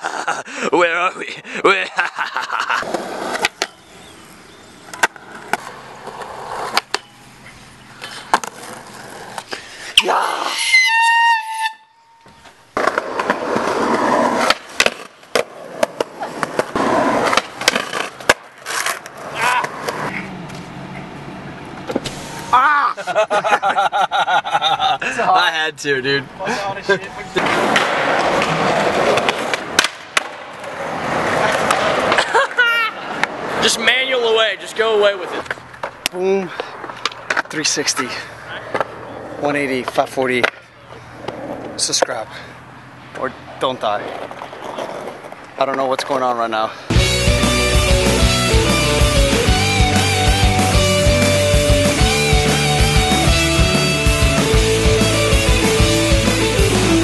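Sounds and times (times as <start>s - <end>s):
skateboard wheels rolling on concrete: 0.0s - 57.0s
skateboard clacking down: 12.8s - 20.1s, 27.4s - 32.4s.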